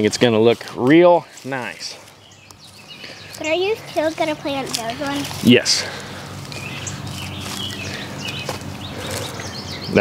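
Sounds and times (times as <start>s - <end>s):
birds chirping: 0.0s - 10.0s
steady low hum: 1.2s - 10.0s.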